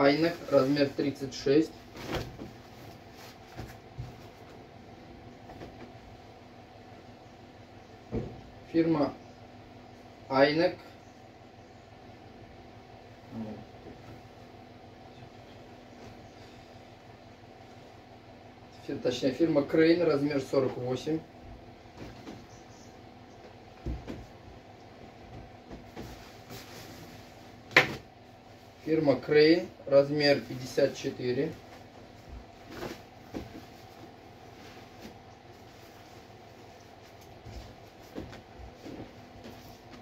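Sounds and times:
low room hum: 0.0s - 40.0s.

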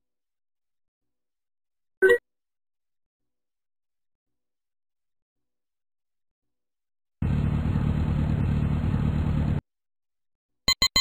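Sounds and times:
cartoon van engine running: 7.2s - 9.6s
quick short beeps: 10.7s - 11.0s.

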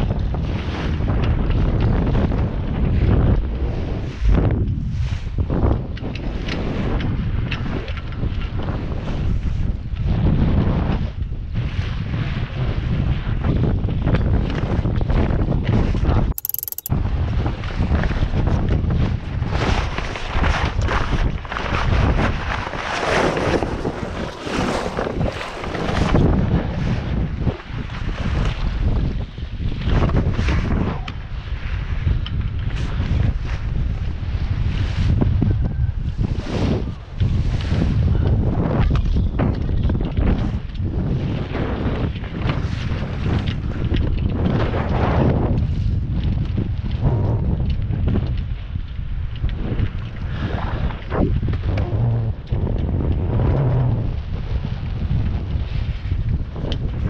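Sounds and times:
wind buffeting microphone: 0.0s - 7.4s, 20.6s - 57.0s
low rumble: 51.1s - 55.0s.

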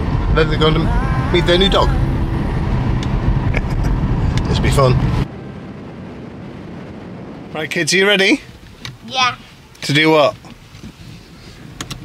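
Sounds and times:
car cabin road noise: 0.0s - 12.0s
steady rushing noise: 0.0s - 12.0s.

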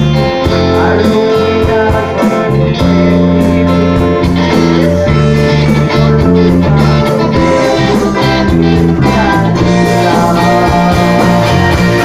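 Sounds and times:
live rock band playing: 0.0s - 12.0s
person singing: 0.0s - 12.0s.

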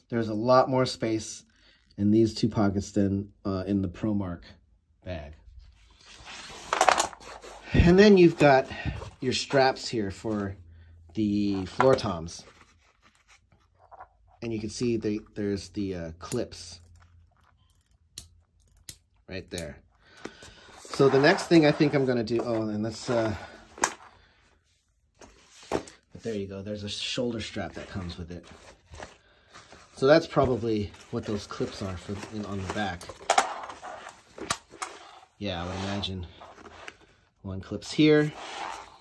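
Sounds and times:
cloth bag rustling: 20.6s - 24.0s, 27.7s - 37.1s
handling noise: 27.7s - 35.0s.

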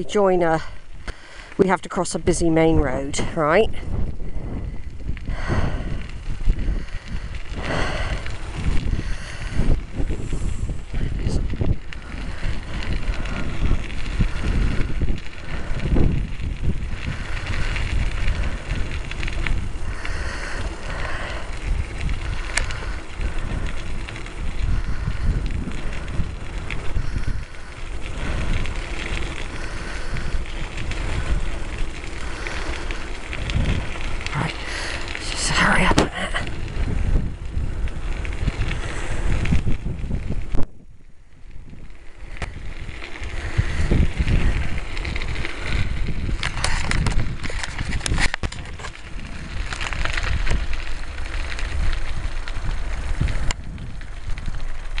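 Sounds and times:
bicycle tyre noise on trail: 0.0s - 55.0s
wind on microphone: 0.0s - 55.0s.

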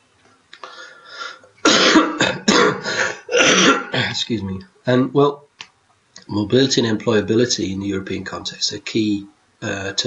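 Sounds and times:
man coughing: 1.7s - 4.3s.

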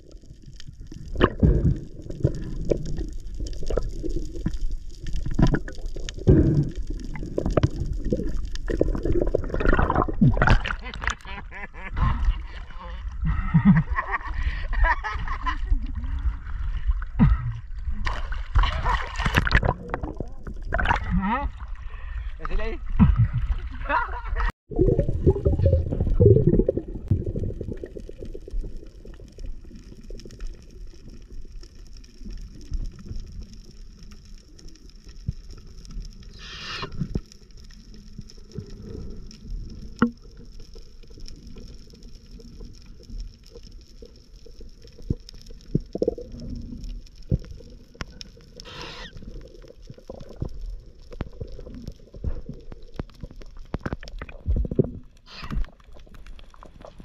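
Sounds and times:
muffled underwater rumble: 0.0s - 57.0s
brief hisses: 36.3s - 37.0s.

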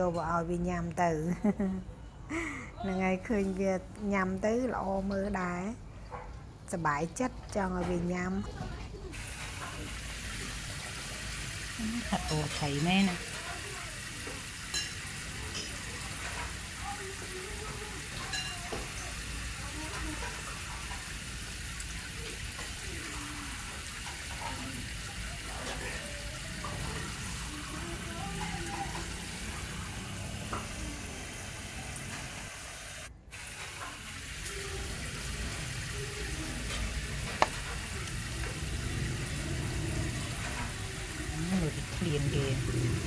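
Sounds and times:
faint voices: 22.1s - 32.2s.

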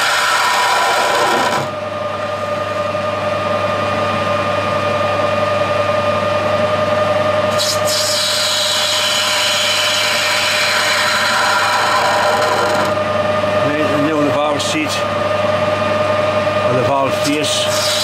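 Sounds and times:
metal lathe humming: 0.0s - 18.0s.

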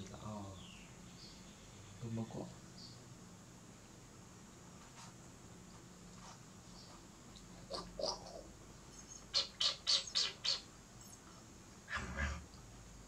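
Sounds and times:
baby monkey squeaking: 9.0s - 11.2s.

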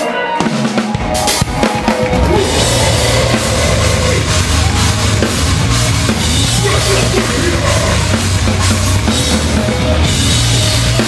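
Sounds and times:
metalcore band playing live: 0.0s - 11.0s.

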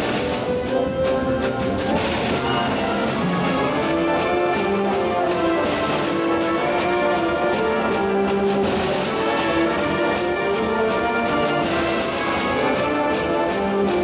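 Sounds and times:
wind band playing chords: 0.0s - 14.0s.

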